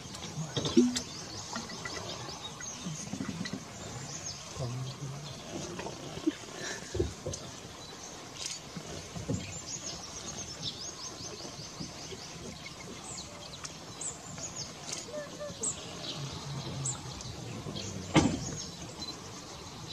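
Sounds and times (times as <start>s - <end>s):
small birds chirping: 0.0s - 19.9s.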